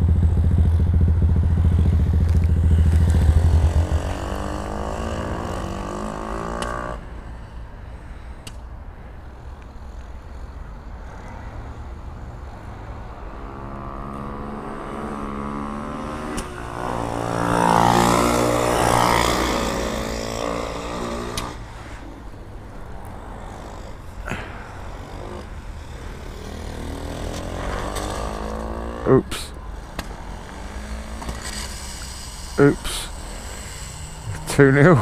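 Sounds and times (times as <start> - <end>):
small motorcycle passing by: 0.0 - 7.5, 10.3 - 35.0
faint engines running: 0.0 - 35.0.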